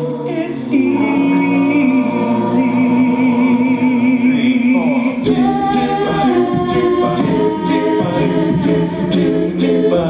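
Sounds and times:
a cappella group singing chords: 0.0 - 10.0
vocal percussion beat: 0.0 - 10.0.

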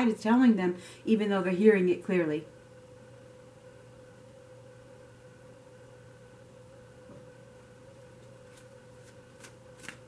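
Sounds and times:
faint steady hum: 0.0 - 10.0
cards being shuffled: 8.2 - 10.0.

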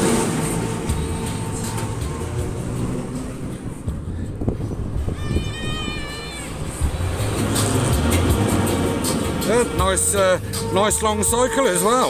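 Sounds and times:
ferris wheel rumbling and rattling: 0.0 - 11.9.

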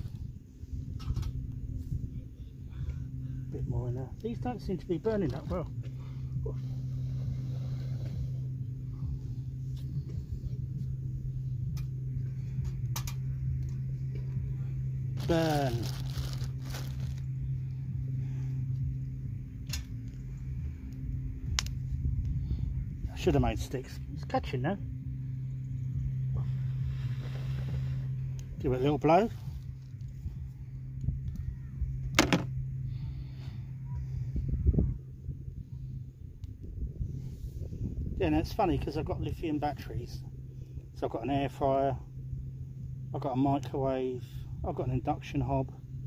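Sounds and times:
steady low hum: 0.0 - 46.0
wind rumbling on microphone: 0.0 - 46.0.

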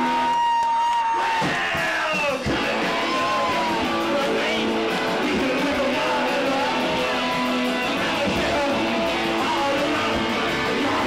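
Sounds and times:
garage rock band playing: 0.0 - 11.0.

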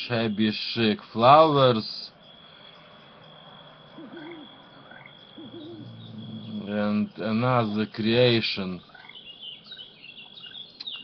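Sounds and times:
high thin insect-like tone: 0.0 - 11.0
low hooting calls: 1.3 - 11.0.

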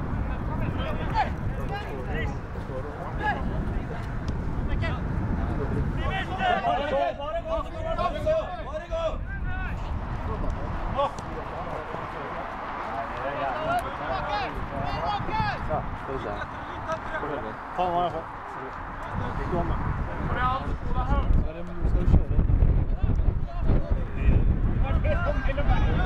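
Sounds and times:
voices shouting and calling: 0.0 - 21.3, 23.0 - 26.0
wind rumble on microphone: 0.0 - 26.0.

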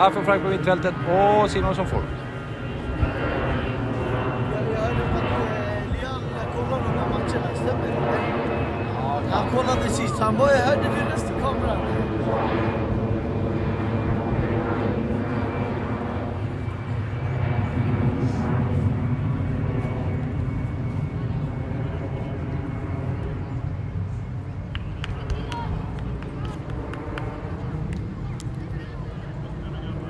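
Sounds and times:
aircraft engine drone: 0.0 - 30.0
distant voices: 0.0 - 30.0.

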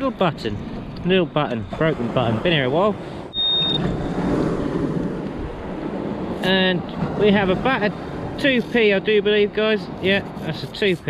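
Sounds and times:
steady rushing noise: 0.0 - 11.0
metal detector beep: 3.3 - 3.9.

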